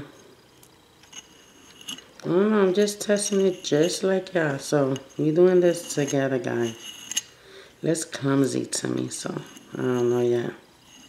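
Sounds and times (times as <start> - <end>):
spatula scraping paint on paper: 1.1 - 2.0, 2.8 - 7.3, 9.2 - 11.0.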